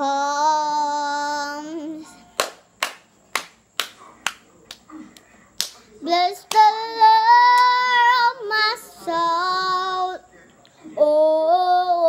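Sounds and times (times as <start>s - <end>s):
hand snaps keeping a beat: 2.4s - 5.8s, 6.5s - 6.7s.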